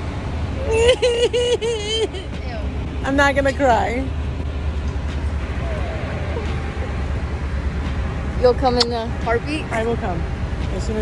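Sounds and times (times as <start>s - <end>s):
low outdoor rumble: 0.0s - 11.0s
faint voices: 5.4s - 7.6s.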